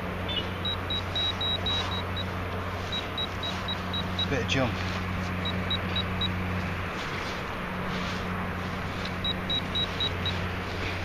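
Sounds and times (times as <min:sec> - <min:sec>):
steady low hum: 0:00.0 - 0:11.0
metal detector beeping: 0:00.3 - 0:04.6, 0:05.4 - 0:06.4, 0:09.0 - 0:10.4
hand rustling through earth: 0:01.7 - 0:11.0.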